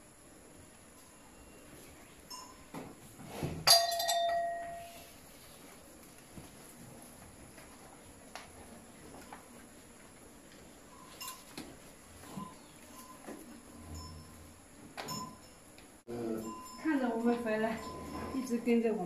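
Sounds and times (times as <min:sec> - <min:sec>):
sharp metallic clang: 0:03.6 - 0:04.8.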